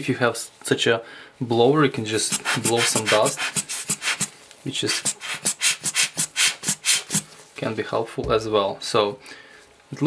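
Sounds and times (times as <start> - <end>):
hissy puffs from air blower: 2.3 - 7.4.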